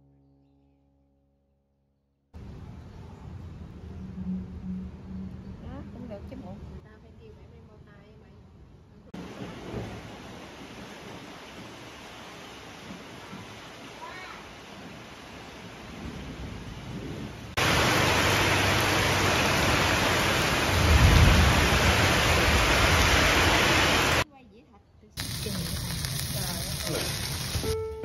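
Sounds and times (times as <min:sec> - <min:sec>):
low rumble of thunder: 0:09.2 - 0:12.0, 0:14.8 - 0:23.6
heavy rain on pavement: 0:09.2 - 0:24.2, 0:25.2 - 0:27.8.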